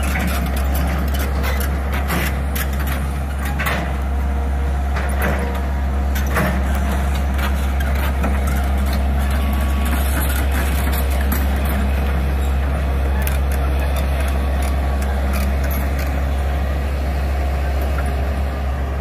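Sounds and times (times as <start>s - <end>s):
excavator diesel engine droning: 0.0s - 19.0s.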